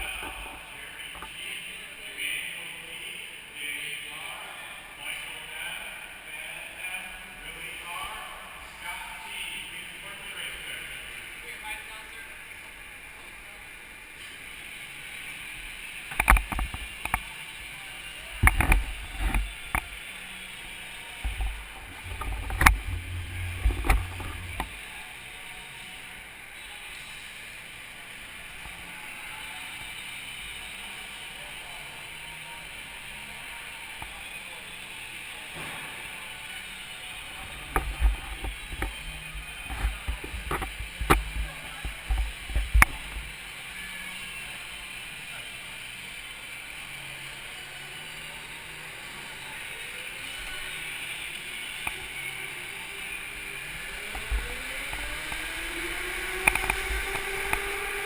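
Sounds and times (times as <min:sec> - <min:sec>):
go-kart motor and tyre noise: 0:14.2 - 0:58.0.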